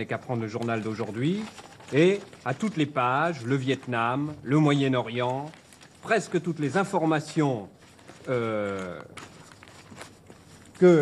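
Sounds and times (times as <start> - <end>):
newspaper pages rustling: 0.0 - 11.0.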